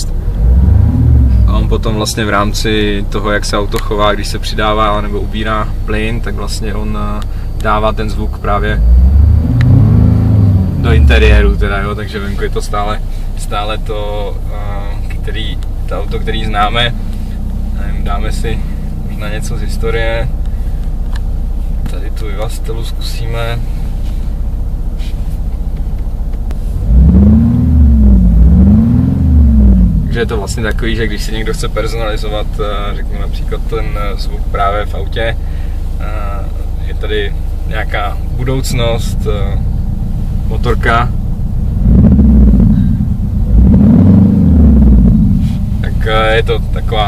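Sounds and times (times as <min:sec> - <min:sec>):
car low idle hum: 0:00.0 - 0:47.0
simulated engine sound from speakers: 0:00.0 - 0:47.0.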